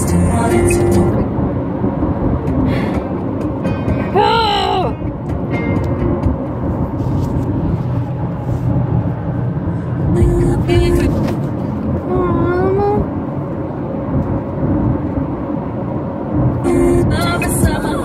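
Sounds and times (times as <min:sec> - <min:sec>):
car road and engine noise: 0:00.0 - 0:18.0.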